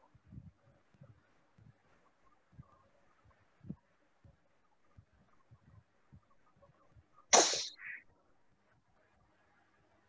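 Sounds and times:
person sneezing: 0:07.4 - 0:07.8.

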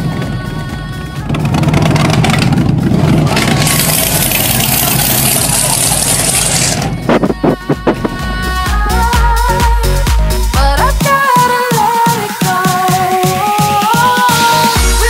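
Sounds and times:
background music: 0:00.0 - 0:04.8, 0:06.6 - 0:15.0
supercharged engine rasping: 0:00.0 - 0:09.1.

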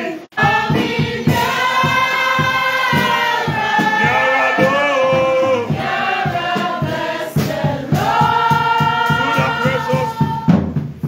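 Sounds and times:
congregation singing: 0:00.0 - 0:10.9
steady low beat: 0:00.4 - 0:11.0.

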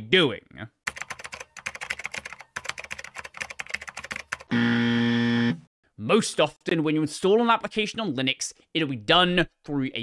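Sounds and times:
fast computer keyboard typing: 0:00.9 - 0:04.5
electronic buzzer tone: 0:04.5 - 0:05.7.

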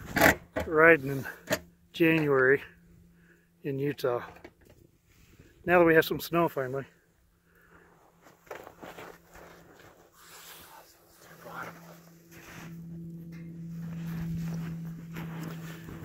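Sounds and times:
steady low hum: 0:00.0 - 0:16.0
footsteps in snow: 0:08.0 - 0:16.0
handling noises: 0:08.2 - 0:16.0.

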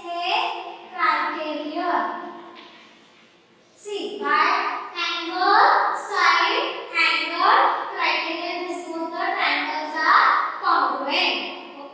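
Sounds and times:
woman speaking: 0:00.0 - 0:02.4, 0:03.8 - 0:11.9.

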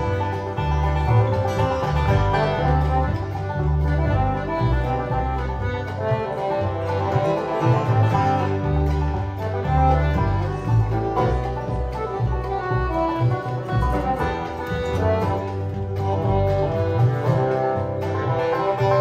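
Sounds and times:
bass line: 0:00.0 - 0:19.0
live band playing instrumental: 0:00.0 - 0:19.0.

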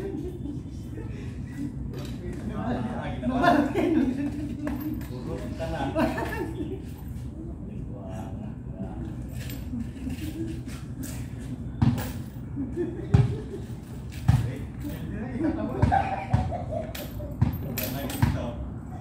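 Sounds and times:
men's voices: 0:00.0 - 0:09.3, 0:12.7 - 0:19.0.

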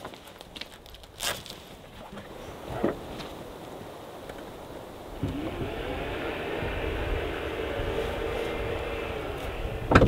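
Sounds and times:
powered tailgate motor whine: 0:05.1 - 0:10.0.

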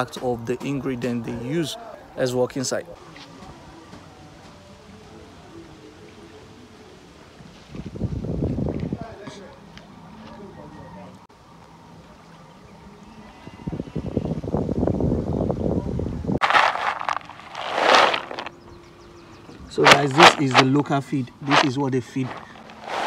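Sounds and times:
loud rustling: 0:16.4 - 0:18.5, 0:19.8 - 0:20.7, 0:21.4 - 0:23.0.

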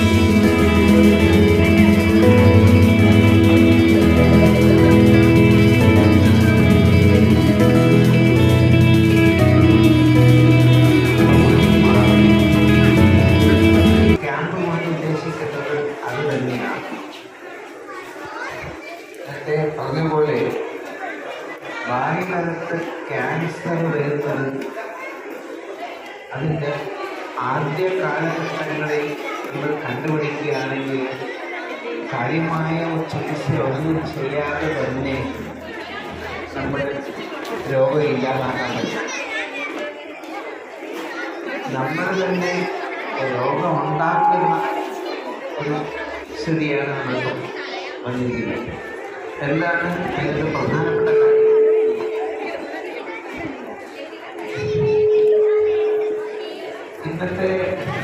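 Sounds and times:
children's voices: 0:00.0 - 0:58.0
crowd chatter: 0:00.0 - 0:58.0
man speaking over loudspeaker: 0:11.2 - 0:17.0, 0:19.2 - 0:20.8, 0:21.8 - 0:24.7, 0:26.3 - 0:31.3, 0:32.1 - 0:35.6, 0:36.4 - 0:39.1, 0:41.7 - 0:52.2, 0:57.0 - 0:58.0.

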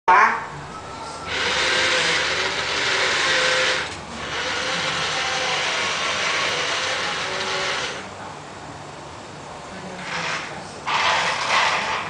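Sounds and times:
toy excavator engine sound effect: 0:01.3 - 0:08.1, 0:10.3 - 0:12.0.

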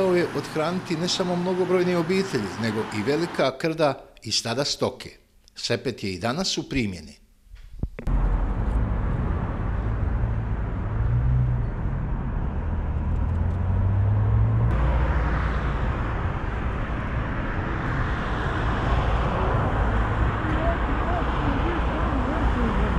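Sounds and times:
road traffic noise: 0:00.0 - 0:03.6, 0:08.0 - 0:22.9.

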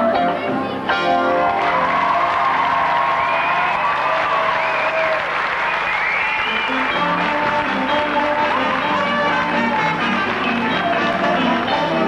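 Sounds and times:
audience applauding: 0:01.4 - 0:12.0.

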